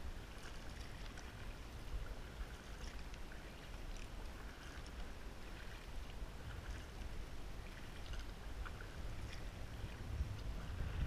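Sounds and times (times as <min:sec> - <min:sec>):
paddle splashing in water: 0:00.0 - 0:11.0
low rumble: 0:09.1 - 0:11.0.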